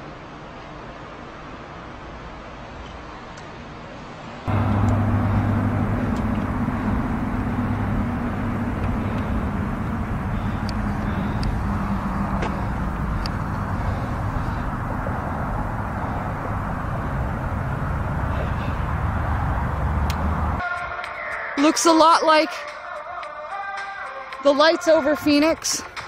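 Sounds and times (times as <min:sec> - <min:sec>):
outdoor traffic rumble: 0:00.0 - 0:20.7
faint clicks: 0:04.6 - 0:15.2, 0:20.0 - 0:20.3.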